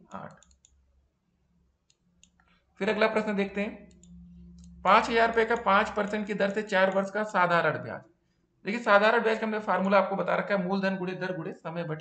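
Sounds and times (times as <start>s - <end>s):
person speaking: 0.0s - 0.7s, 2.8s - 12.0s.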